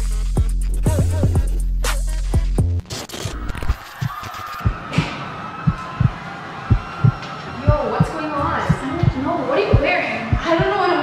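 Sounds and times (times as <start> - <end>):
static glitch noise: 2.8 - 4.6
heartbeat thumps: 4.0 - 11.0.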